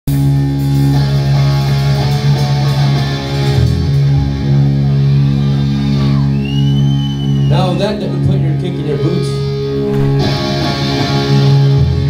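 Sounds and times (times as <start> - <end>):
punk band playing loud: 0.1 - 6.6, 9.5 - 12.0.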